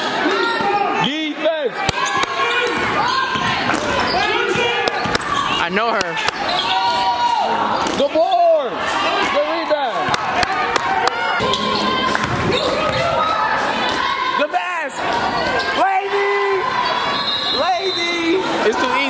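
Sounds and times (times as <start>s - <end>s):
basketball bouncing: 1.9s - 5.4s, 10.0s - 13.3s
sneakers squeaking: 1.9s - 8.4s, 10.0s - 14.0s, 15.0s - 18.4s.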